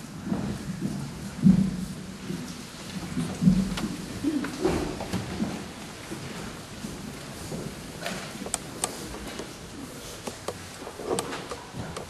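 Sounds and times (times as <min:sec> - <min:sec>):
chairs bumping and scraping on stage: 0:02.3 - 0:12.0.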